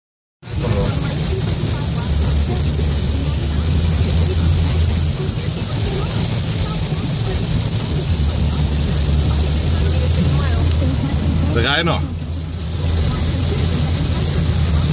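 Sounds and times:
car road noise at speed: 0:00.4 - 0:14.9
rain on windscreen: 0:00.4 - 0:14.9
tyres hissing on wet road: 0:00.4 - 0:14.9.

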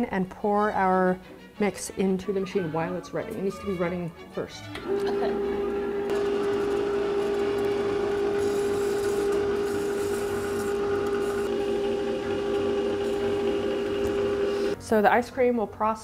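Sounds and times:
ice cream maker motor hum: 0:04.7 - 0:14.8.

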